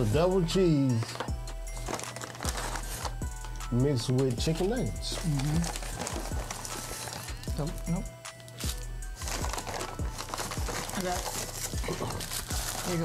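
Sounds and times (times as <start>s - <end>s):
background music: 0.0s - 13.0s
paper wrappers crinkling: 0.9s - 3.6s, 5.1s - 13.0s.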